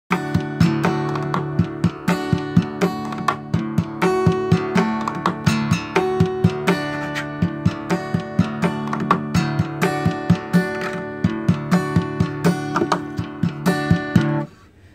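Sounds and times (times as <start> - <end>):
acoustic guitar strummed chords: 0.1 - 14.6
hand slapping guitar: 0.1 - 14.6.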